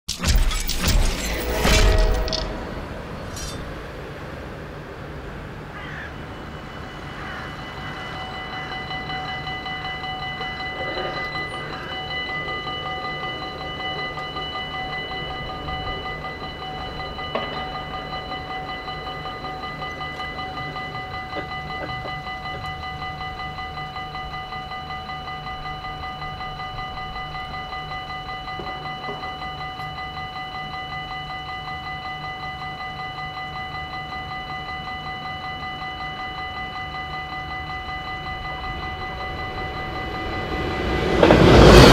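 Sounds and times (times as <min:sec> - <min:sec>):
level crossing warning bells: 0:00.1 - 0:41.9.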